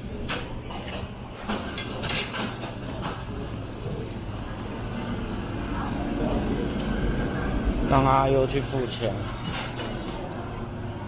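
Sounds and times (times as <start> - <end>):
restaurant room hum: 0.0 - 11.0
dish clatters: 0.3 - 3.3, 9.0 - 10.3.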